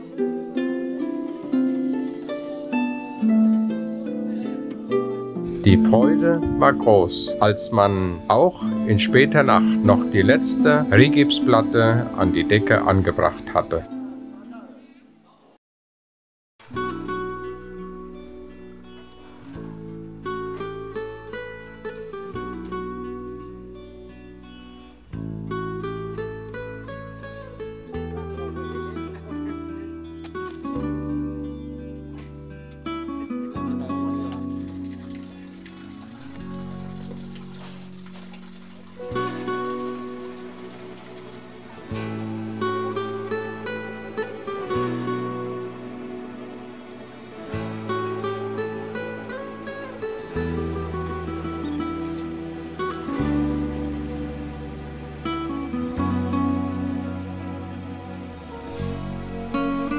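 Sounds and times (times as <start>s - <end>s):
plucked string music: 0.0s - 15.0s, 16.6s - 59.9s.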